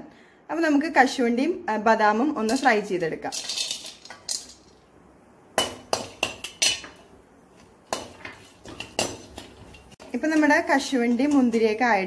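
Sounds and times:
metal spoon clinking in metal pan: 2.4 - 4.8, 5.6 - 7.1, 7.9 - 11.8.

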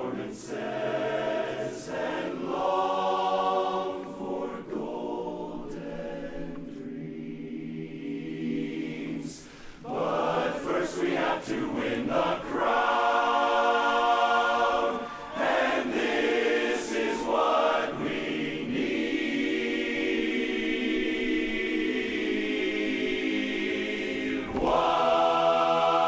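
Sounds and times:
men's chorus singing a cappella: 0.0 - 26.0.

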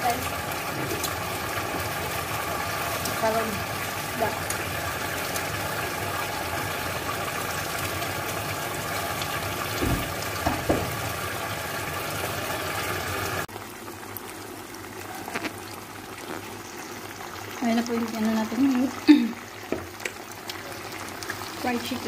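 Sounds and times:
chicken frying in a pan: 0.0 - 22.0.

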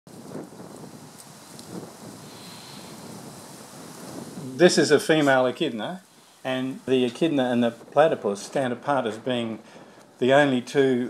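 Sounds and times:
faint rustling: 0.1 - 11.0
wind hissing on microphone: 0.1 - 11.0.

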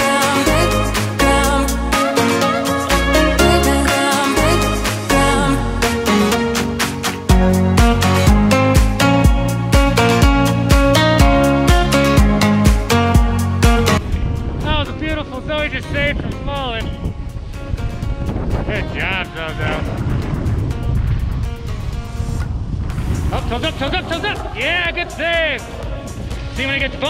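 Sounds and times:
background music: 0.0 - 27.0
wind on microphone: 13.9 - 27.0
snowboard sliding over snow: 19.5 - 27.0
high wavering voice-like sounds: 23.3 - 26.2.

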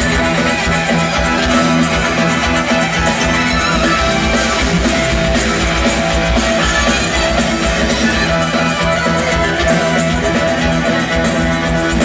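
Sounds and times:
drum kit: 0.0 - 12.0
electric guitar: 0.0 - 12.0.

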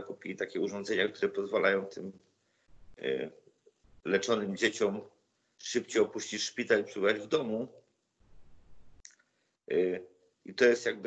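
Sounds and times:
man speaking: 0.0 - 2.2, 3.0 - 7.8, 9.7 - 11.0
faint low background noise: 0.0 - 11.0.

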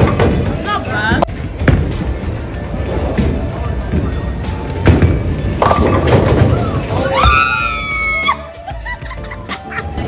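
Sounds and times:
background music: 0.0 - 10.0
bowling ball rolling on wooden lane: 4.8 - 7.0
bowling pins crashing: 4.8 - 7.4.

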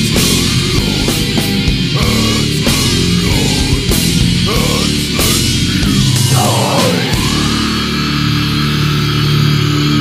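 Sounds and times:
distorted guitar and bass chord: 0.0 - 10.0.

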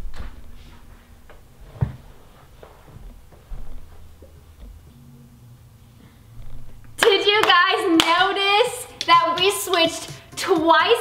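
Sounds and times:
sharp hand claps: 7.0 - 8.2.

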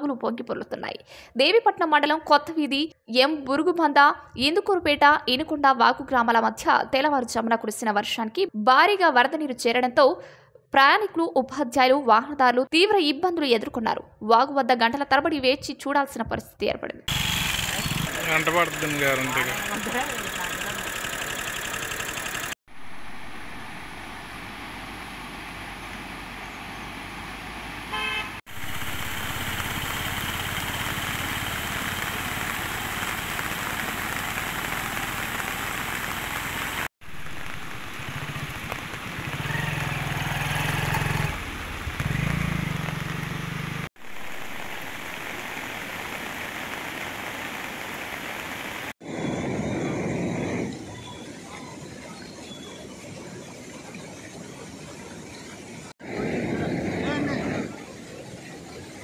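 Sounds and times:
motor vehicle drone: 17.1 - 46.2.

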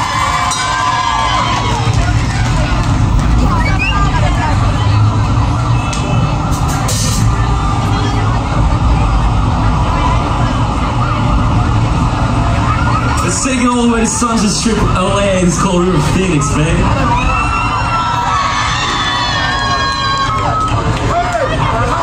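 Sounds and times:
drums: 0.0 - 22.0.

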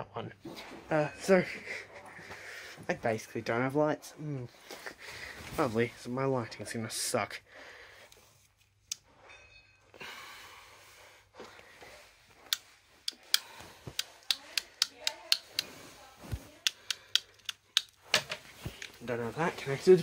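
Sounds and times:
sharp clicks from electrical cable: 12.4 - 15.7, 16.6 - 18.0.

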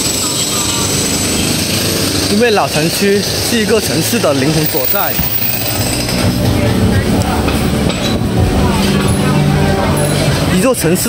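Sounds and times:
road traffic hum: 0.0 - 11.0
voices of passers-by: 0.0 - 11.0.

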